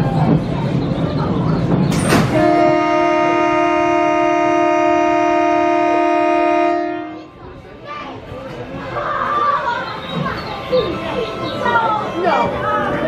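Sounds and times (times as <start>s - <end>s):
loud steady horn tone: 2.3s - 7.4s.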